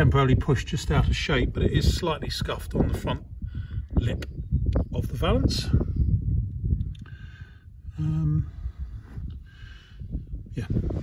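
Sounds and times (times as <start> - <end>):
wind buffeting microphone: 0.0 - 11.0
microphone handling noise: 1.4 - 7.3, 7.9 - 11.0.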